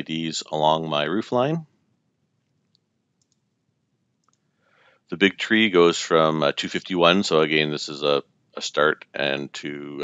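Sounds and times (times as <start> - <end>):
computer mouse clicks: 2.5 - 3.4, 4.2 - 4.4.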